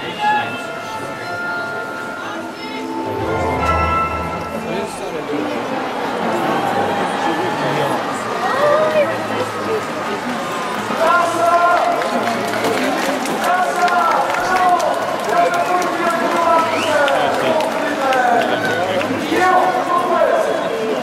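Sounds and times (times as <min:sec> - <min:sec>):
crowd hubbub: 0:00.0 - 0:21.0
people talking: 0:00.0 - 0:21.0.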